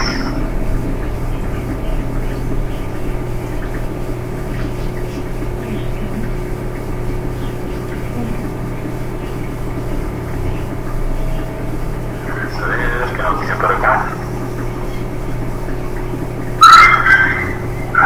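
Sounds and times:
low hum: 0.0s - 18.0s.

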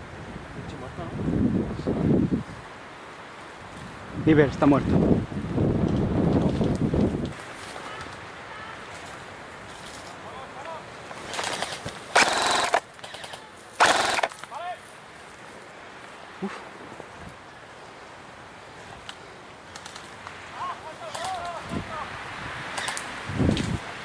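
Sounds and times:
airsoft gun full-auto fire: 11.4s - 14.4s.

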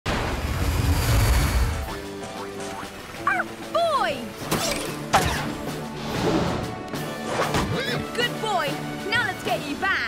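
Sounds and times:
cartoon background music: 1.6s - 10.0s.

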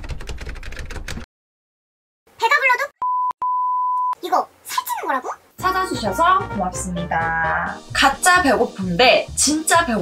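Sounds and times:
high-pitched censor bleep: 3.0s - 4.2s.

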